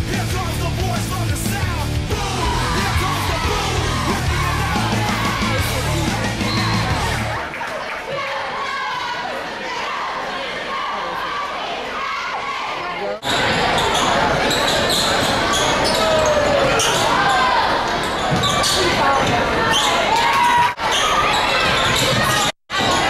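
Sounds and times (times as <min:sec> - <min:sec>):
shouts and chatter echoing: 0:00.0 - 0:23.0.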